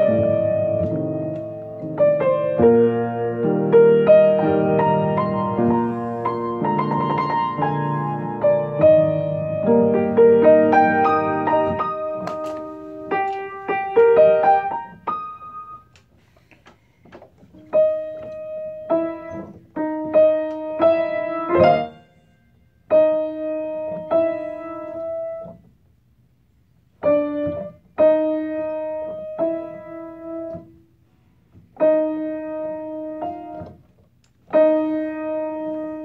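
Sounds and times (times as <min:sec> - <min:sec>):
piano chords: 0:00.0 - 0:16.1, 0:17.4 - 0:36.0.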